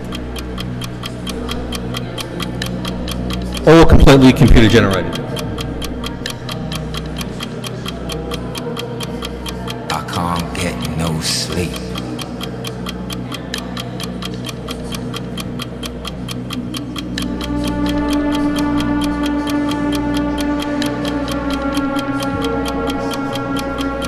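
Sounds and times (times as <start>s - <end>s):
fast steady ticking: 0.0s - 24.0s
sustained low tones: 15.4s - 24.0s.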